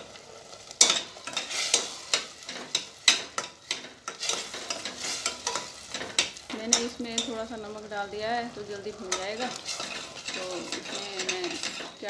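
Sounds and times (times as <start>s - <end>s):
onions sizzling in hot oil: 0.0s - 12.0s
metal spoon scraping saucepan: 0.8s - 7.6s, 8.6s - 12.0s.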